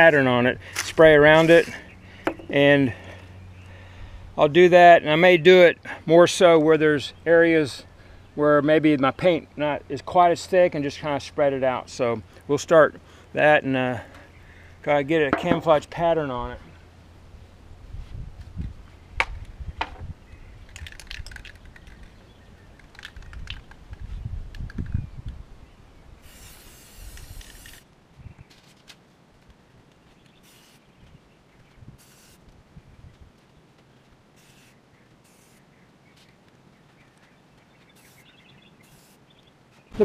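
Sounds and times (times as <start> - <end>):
spray can hissing: 26.2 - 27.8, 30.4 - 30.8, 32.0 - 32.4, 34.4 - 35.6, 38.0 - 39.2.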